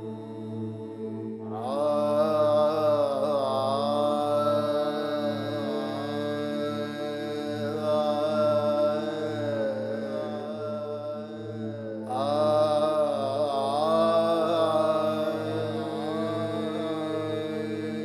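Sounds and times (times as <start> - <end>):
low drone: 0.0 - 18.0
person singing long held notes: 0.0 - 18.0.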